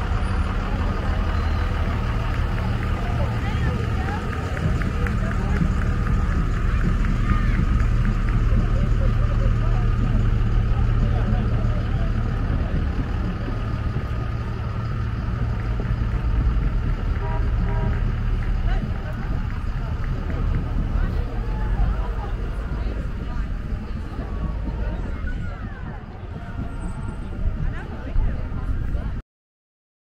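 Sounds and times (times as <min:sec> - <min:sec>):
faint voices: 0:00.0 - 0:29.2
vehicle engines rumbling: 0:00.0 - 0:29.2.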